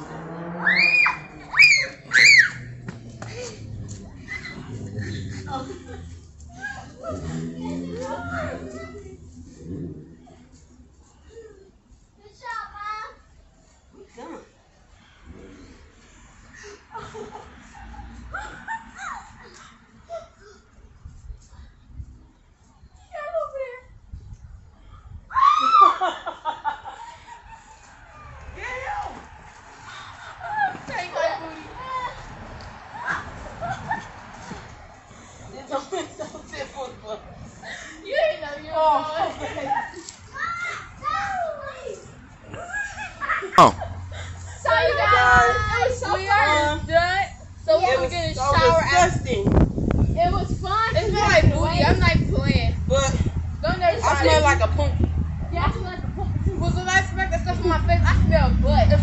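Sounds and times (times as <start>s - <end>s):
playful high-pitched shrieks: 0.0s - 2.8s, 25.3s - 26.1s.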